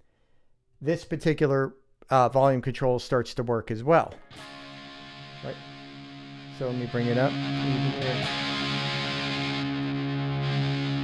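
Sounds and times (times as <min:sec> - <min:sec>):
distorted electric guitar chord ringing: 0:04.2 - 0:11.0.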